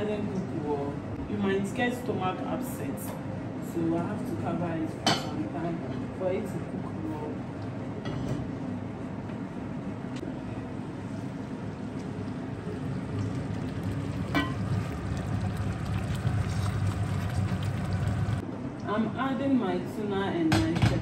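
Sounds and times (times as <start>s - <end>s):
stew bubbling in a pot: 11.2s - 18.4s.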